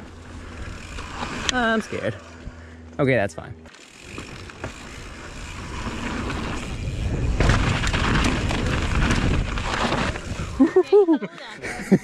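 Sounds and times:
bike tyres rolling over rock: 0:00.0 - 0:02.6, 0:03.7 - 0:10.7
wind over microphone: 0:06.5 - 0:10.7.

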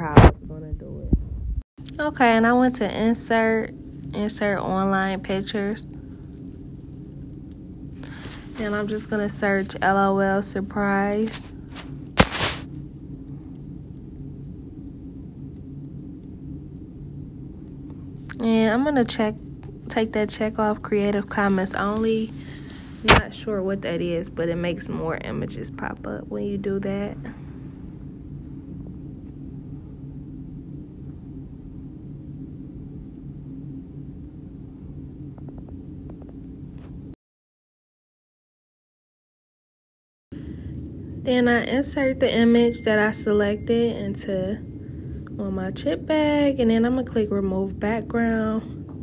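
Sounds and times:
steady low hum: 0:00.0 - 0:37.2, 0:40.4 - 0:49.0.

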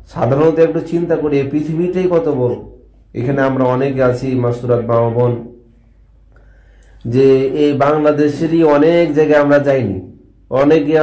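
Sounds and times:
man chanting: 0:07.0 - 0:11.0.

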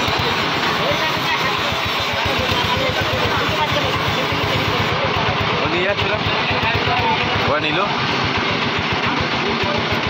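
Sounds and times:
men talking: 0:00.0 - 0:08.2
van engine idling: 0:00.0 - 0:10.0.

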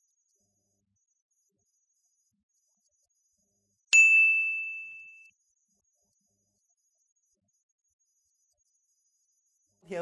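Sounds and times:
bright bell ding: 0:04.0 - 0:05.3.

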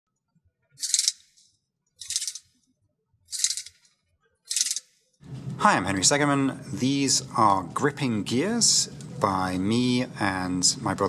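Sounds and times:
plastic gears rattling: 0:00.8 - 0:01.3, 0:02.0 - 0:02.5, 0:03.3 - 0:03.8, 0:04.5 - 0:04.9.

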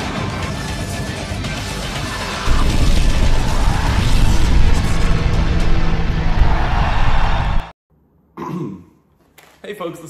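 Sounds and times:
loud intro music: 0:00.0 - 0:07.7
explosion sound effects: 0:02.5 - 0:07.7.

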